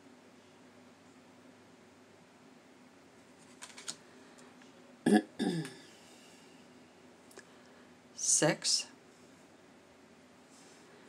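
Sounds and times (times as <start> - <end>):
woman's throaty vocal sounds: 5.1 - 5.9.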